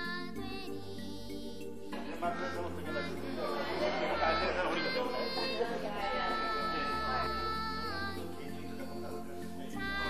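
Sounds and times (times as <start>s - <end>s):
people chattering: 2.0s - 10.0s.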